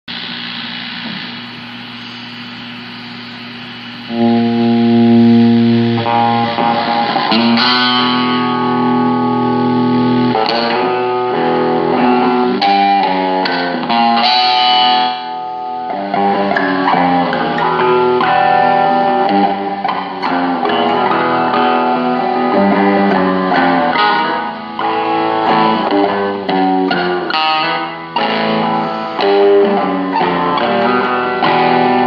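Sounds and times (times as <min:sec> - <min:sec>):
electric guitar chords and notes: 0:00.1 - 0:32.0.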